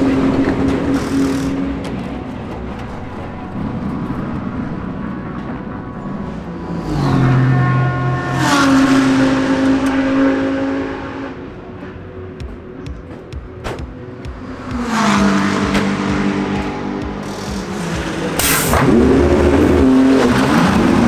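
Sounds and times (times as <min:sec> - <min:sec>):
race car engine passing: 0:06.0 - 0:11.6, 0:14.4 - 0:21.0.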